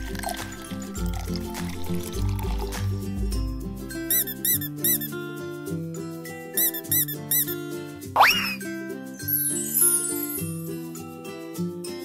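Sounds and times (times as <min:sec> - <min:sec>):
background music: 0:00.0 - 0:12.0
rubber duck squeaking: 0:04.1 - 0:05.1, 0:06.6 - 0:07.6, 0:08.2 - 0:08.6.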